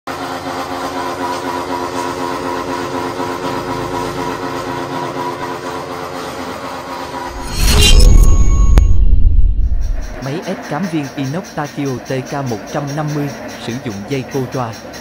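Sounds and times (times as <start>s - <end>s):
loud rushing with deep rumble: 7.3s - 10.2s.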